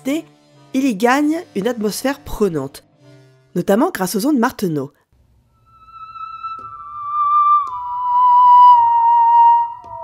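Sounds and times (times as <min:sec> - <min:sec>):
electronic instrument sliding notes: 0:05.5 - 0:10.0.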